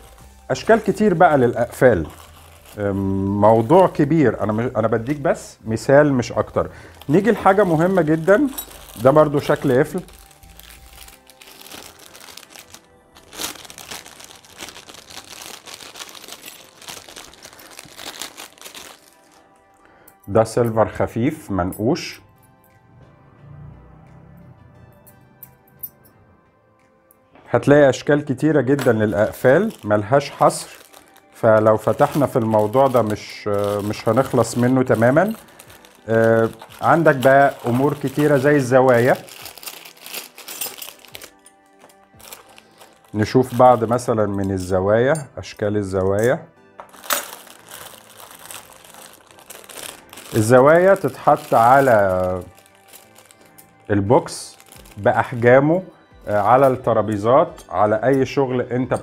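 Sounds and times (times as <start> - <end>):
plastic bag crinkling: 0.0 - 19.6, 28.8 - 44.7, 46.8 - 55.4
faint background music: 0.0 - 59.0.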